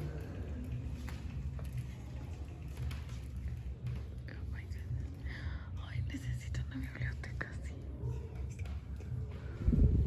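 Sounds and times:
whispered murmured voices: 0.0s - 10.0s
steady low rumble: 3.3s - 10.0s.

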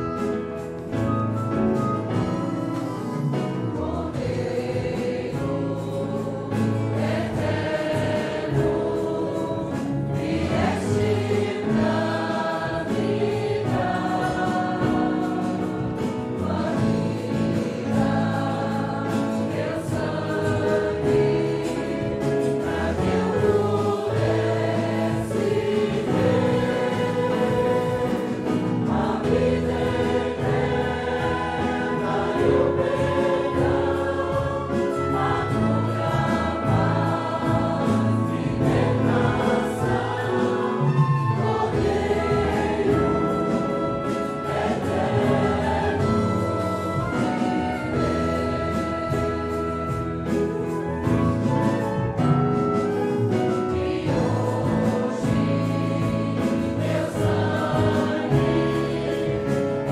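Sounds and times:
congregation singing a hymn: 0.0s - 59.9s
instrumental accompaniment: 0.0s - 59.9s.

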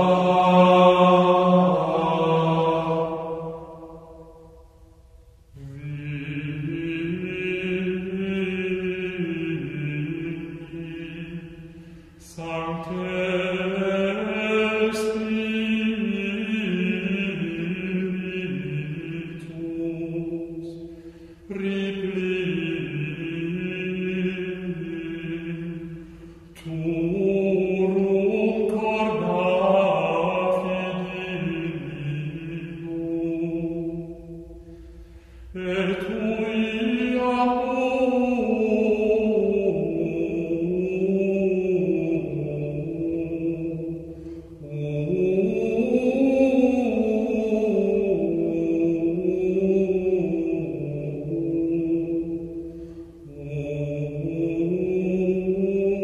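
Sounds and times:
unaccompanied plainsong chant: 0.0s - 4.7s, 5.5s - 56.0s.

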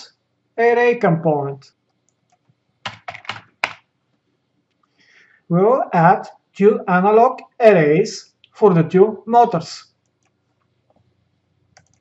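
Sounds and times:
keyboard typing: 2.0s - 3.9s, 11.7s - 12.0s.

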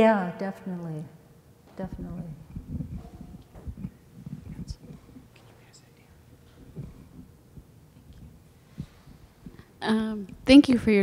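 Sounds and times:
faint whispered voices: 4.3s - 6.3s.

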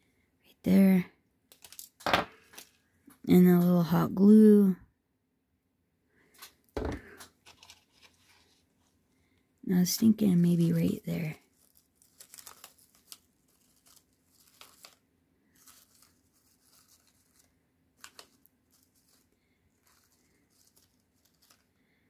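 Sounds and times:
paper rustling and crinkling: 1.5s - 2.8s, 6.3s - 9.0s, 10.4s - 21.8s.

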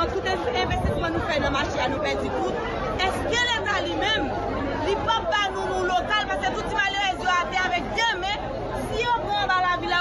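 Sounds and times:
people chattering: 0.0s - 10.0s
woman speaking emphatically: 0.0s - 10.0s.

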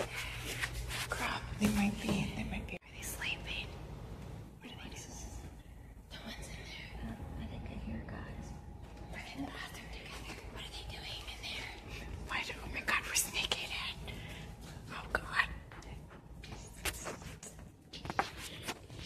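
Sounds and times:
hushed whispering: 4.6s - 8.5s, 9.1s - 17.4s.

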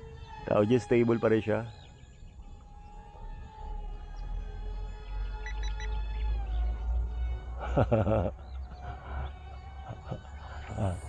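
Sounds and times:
electric motor high-pitched whine: 0.0s - 7.5s.

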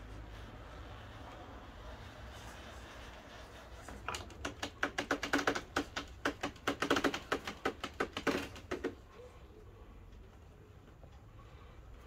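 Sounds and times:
toy car clattering on wooden boards: 4.0s - 9.0s.

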